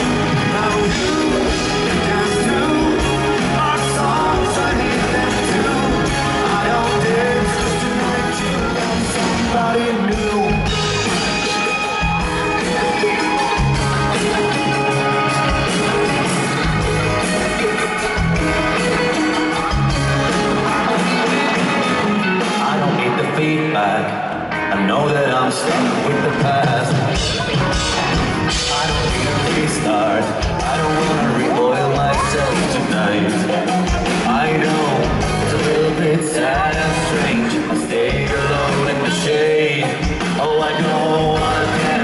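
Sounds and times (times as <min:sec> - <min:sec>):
person singing: 0:00.0 - 0:42.0
pop-rock band with orchestra: 0:00.0 - 0:42.0.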